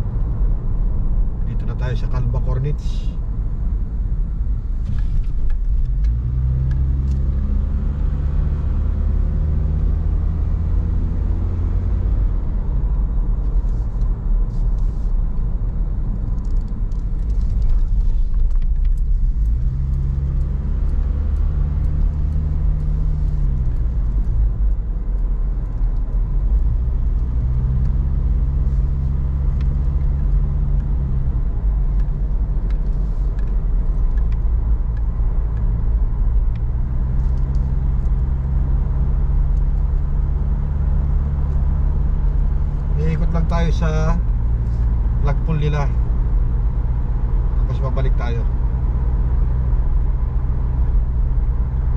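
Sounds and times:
car engine and tyre rumble: 0:00.0 - 0:51.9.

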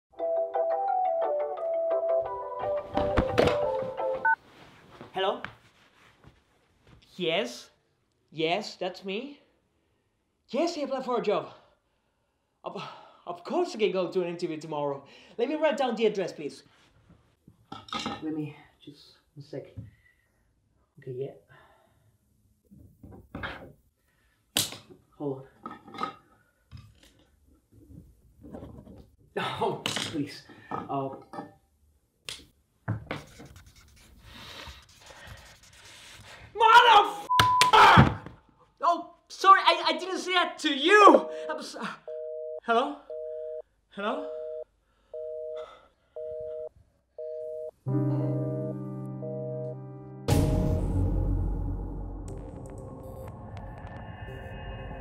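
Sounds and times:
rustling: 0:03.0 - 0:07.1
pen scratching on paper: 0:33.1 - 0:36.2
mobile phone ringtone: 0:44.2 - 0:47.8.

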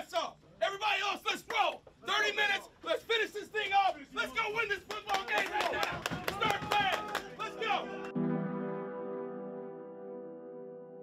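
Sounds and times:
men shouting over one another: 0:03.7 - 0:08.1
sharp hand claps: 0:04.8 - 0:08.2.

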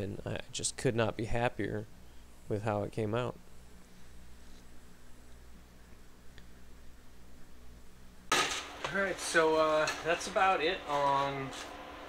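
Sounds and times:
man speaking: 0:08.9 - 0:11.6.

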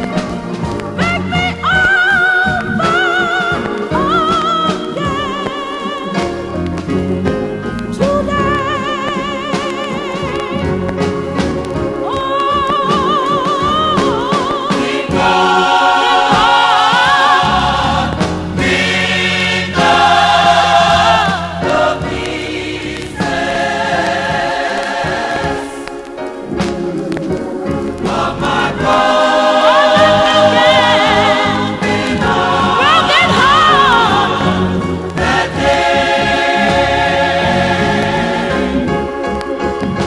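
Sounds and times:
gospel choir singing: 0:00.0 - 0:40.0.

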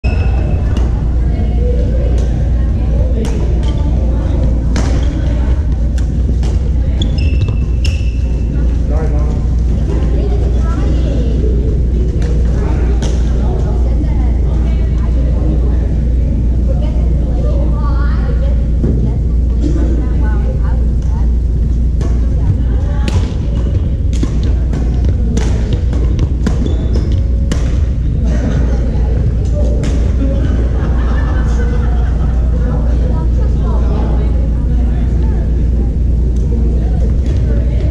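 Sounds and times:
distant voices: 0:00.0 - 0:37.9
steady low rumble: 0:00.0 - 0:37.9
shoe squeaks on wooden floor: 0:07.0 - 0:08.4.

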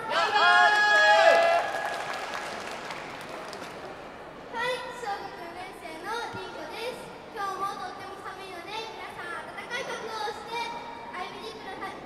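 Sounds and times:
applause: 0:00.7 - 0:03.9
girl's amplified voice: 0:04.5 - 0:12.0.

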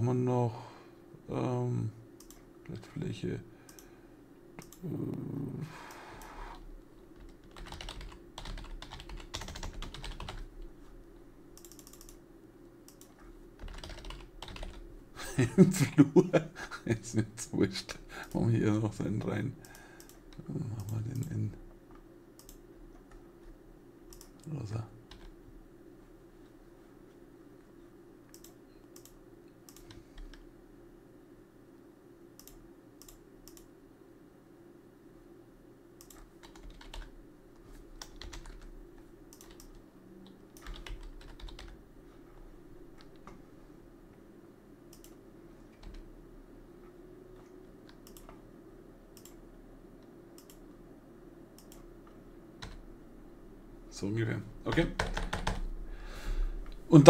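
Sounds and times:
low steady hum: 0:00.0 - 0:57.0
keyboard clicks: 0:02.2 - 0:02.4, 0:04.6 - 0:04.9, 0:07.2 - 0:10.5, 0:11.6 - 0:12.2, 0:12.9 - 0:14.8, 0:19.1 - 0:21.4, 0:22.4 - 0:23.2, 0:24.1 - 0:24.5, 0:28.3 - 0:30.4, 0:32.4 - 0:33.7, 0:36.0 - 0:37.1, 0:38.0 - 0:38.7, 0:39.3 - 0:41.8, 0:44.9 - 0:46.1, 0:47.4 - 0:48.4, 0:49.1 - 0:49.4, 0:50.4 - 0:50.8, 0:51.6 - 0:51.9, 0:54.7 - 0:55.7
mouse clicks: 0:04.6 - 0:04.8, 0:22.4 - 0:22.6, 0:28.3 - 0:30.4, 0:32.4 - 0:33.7, 0:44.9 - 0:45.2, 0:47.8 - 0:48.4, 0:49.2 - 0:49.4, 0:50.4 - 0:50.7, 0:51.6 - 0:51.9
keyboard keystrokes: 0:07.2 - 0:10.4, 0:11.6 - 0:12.2, 0:12.9 - 0:14.8, 0:39.3 - 0:41.8, 0:47.8 - 0:48.4, 0:54.7 - 0:55.7.

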